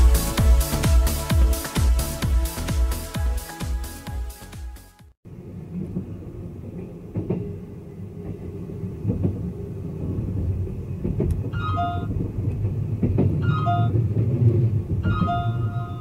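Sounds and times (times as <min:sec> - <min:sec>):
train rumbling on rails: 0:05.3 - 0:16.0
piano-like music notes: 0:15.0 - 0:16.0.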